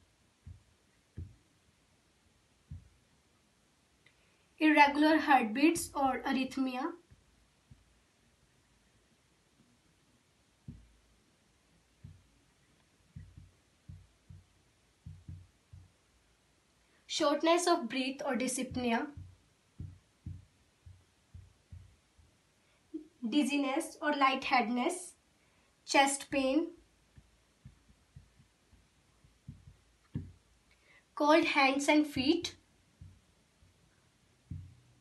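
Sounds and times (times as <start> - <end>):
marker thumping on whiteboard: 0.4 - 1.5, 2.6 - 3.0, 7.1 - 8.0, 10.6 - 11.0, 12.0 - 12.3, 13.1 - 16.1, 18.5 - 22.4, 27.1 - 30.6, 32.1 - 33.8, 34.4 - 34.9.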